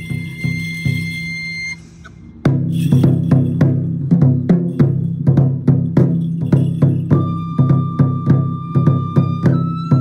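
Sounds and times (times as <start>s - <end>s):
light drumming: 2.3s - 10.0s.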